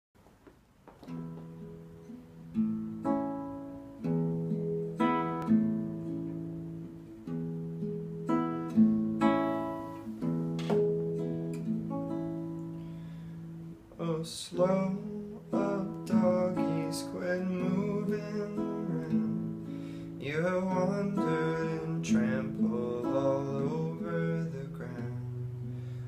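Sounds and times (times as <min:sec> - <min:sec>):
classical guitar playing: 0:00.9 - 0:26.0.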